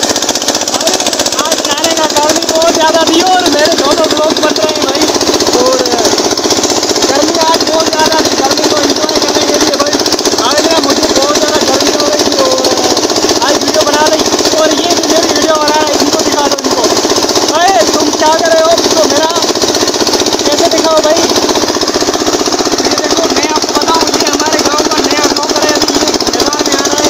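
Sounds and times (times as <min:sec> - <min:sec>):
pump engine pulsing: 0:00.0 - 0:27.0.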